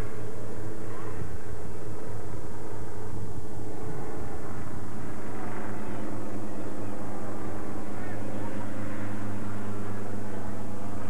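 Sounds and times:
low hum: 0.0 - 11.0
noisy haze: 0.0 - 11.0.

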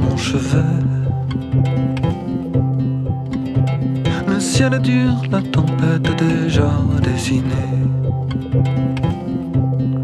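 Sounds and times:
plucked strings over low notes: 0.0 - 10.0.

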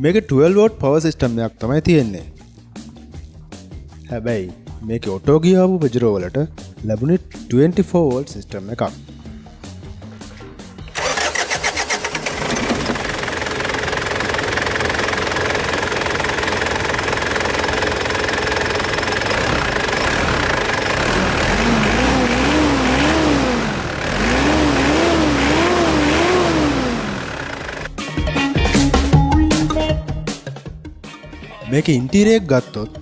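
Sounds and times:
engine revving in quick blips: 10.9 - 13.1, 18.9 - 27.9
diesel engine cranking and idling: 10.9 - 27.9.

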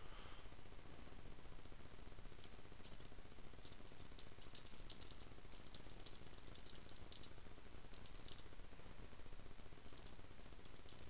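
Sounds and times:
computer keyboard typing: 2.4 - 8.5, 9.8 - 11.0.

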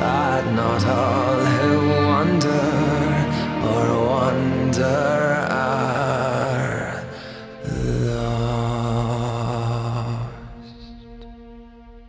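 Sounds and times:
man singing with vibrato: 0.0 - 11.0
low sustained chord: 0.0 - 12.0.

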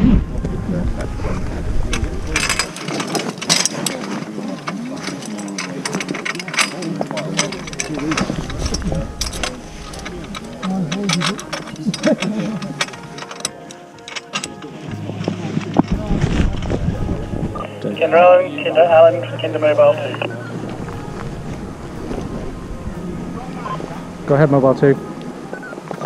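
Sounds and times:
indistinct voices: 0.0 - 25.8
metal stretcher frame clicking: 2.0 - 14.8.

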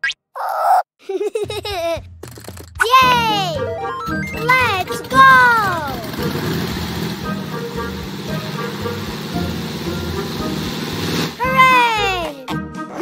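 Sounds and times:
child's excited voice: 2.8 - 3.7, 4.4 - 6.2, 11.4 - 13.0
propeller plane engine rumble: 5.8 - 11.4.

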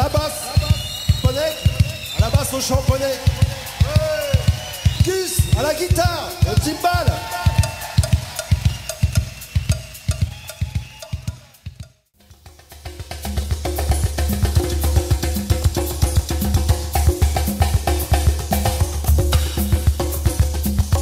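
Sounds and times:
drum groove: 0.0 - 21.0
drum kit and percussion: 0.0 - 21.0.

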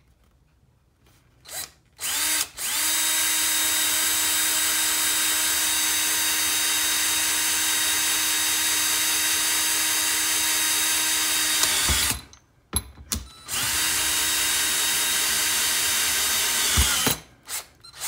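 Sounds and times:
electric drill whining: 1.5 - 12.3, 13.3 - 18.0.

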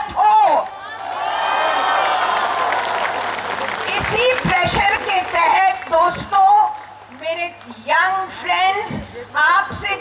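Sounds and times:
crowd applauding: 1.1 - 6.0.

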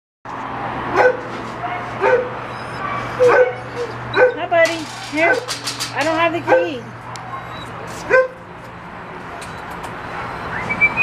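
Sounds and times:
dog barking: 0.9 - 4.5, 6.5 - 7.4, 8.1 - 8.4.

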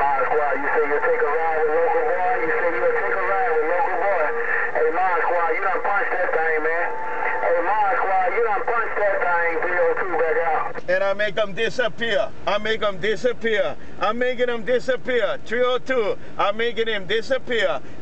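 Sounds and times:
garbled radio voice: 0.0 - 17.8.

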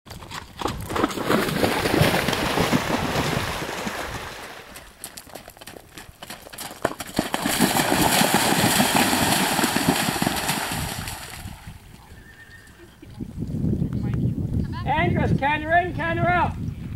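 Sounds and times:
horse hoofbeats cantering: 0.1 - 4.1, 4.7 - 13.4
horse splashing through water: 0.1 - 11.9.

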